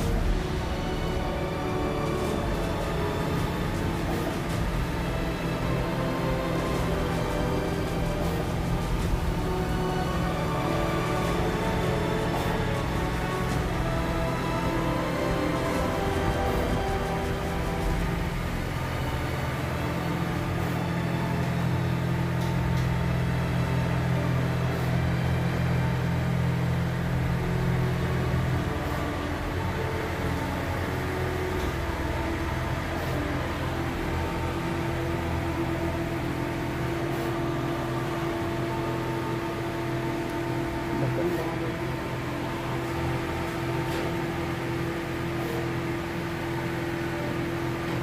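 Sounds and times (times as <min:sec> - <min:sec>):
background music: 0:00.0 - 0:48.0
printer machine hum: 0:00.0 - 0:48.0.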